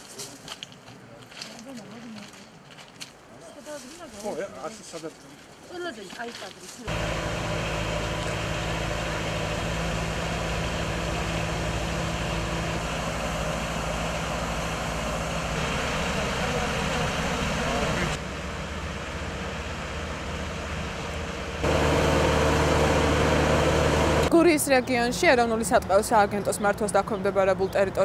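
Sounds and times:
mist-blower sprayer running: 6.9s - 24.3s
steady hum: 6.9s - 24.4s
truck engine running: 6.9s - 28.0s.

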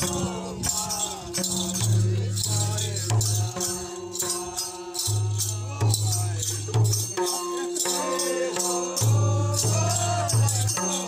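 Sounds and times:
hand drums beating: 0.0s - 11.0s
voices chanting: 0.0s - 11.0s.

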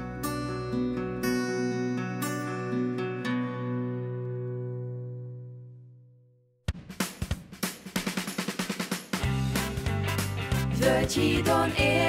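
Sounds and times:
drum fill on snare and bass drum: 6.7s - 11.9s.

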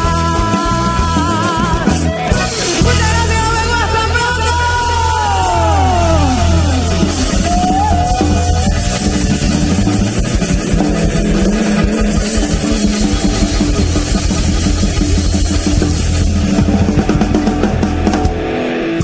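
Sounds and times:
live band playing polka: 0.0s - 19.0s.

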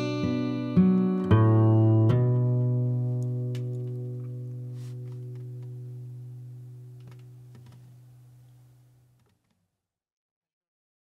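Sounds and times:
acoustic guitar chord ringing: 0.0s - 8.4s.

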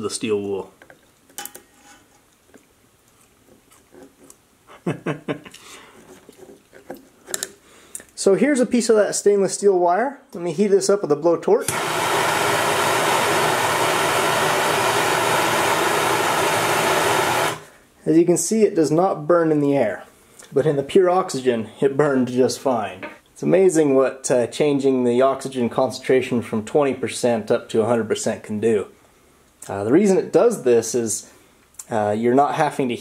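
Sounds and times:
blowtorch flame hissing: 11.6s - 17.7s.

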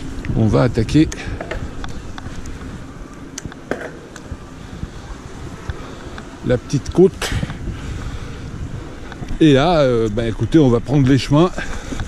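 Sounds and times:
bike clicks and rattles: 0.0s - 5.0s, 5.6s - 12.0s
wind on microphone: 0.0s - 12.0s.

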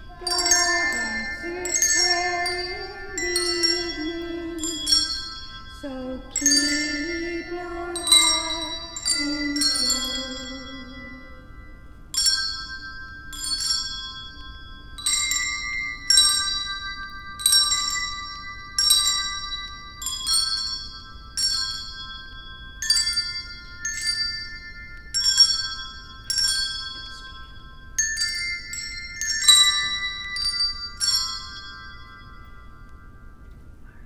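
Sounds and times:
handbells playing slow melody: 0.0s - 34.0s.

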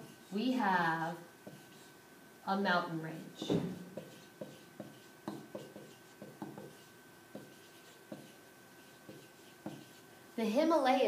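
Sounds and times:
marker writing on paper: 1.4s - 2.0s, 3.9s - 10.1s.

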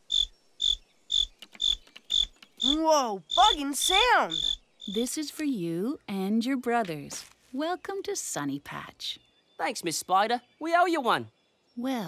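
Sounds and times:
cricket chirping: 0.0s - 5.1s.

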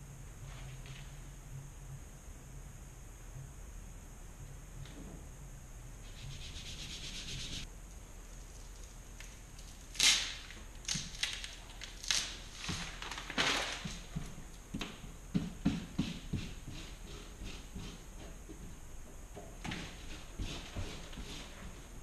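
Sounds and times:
plastic sheet crinkling and scratching: 8.3s - 14.2s
plastic sheet rustling: 8.3s - 14.2s.

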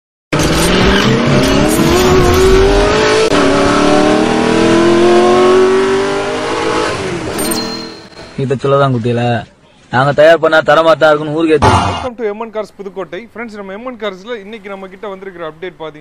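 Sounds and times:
car engine accelerating hard: 0.4s - 7.3s.

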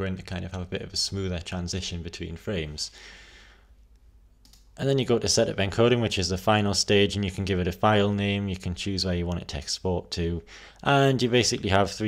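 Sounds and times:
man speaking: 0.0s - 3.0s, 4.8s - 12.0s.

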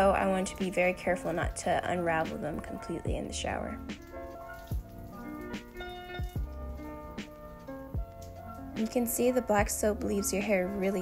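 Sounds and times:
held chords over soft beat: 0.0s - 11.0s.

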